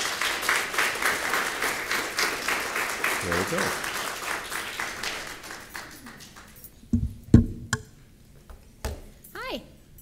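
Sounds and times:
applause: 0.0s - 6.7s
knocks and thumps on microphone: 6.9s - 7.8s.

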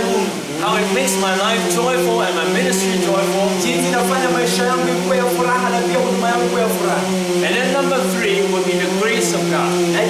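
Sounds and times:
person speaking: 0.0s - 10.0s
steady hum: 0.0s - 10.0s.

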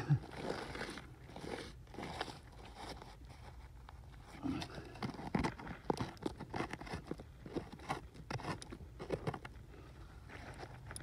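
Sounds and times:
hand raking through gritty soil: 0.0s - 11.0s.

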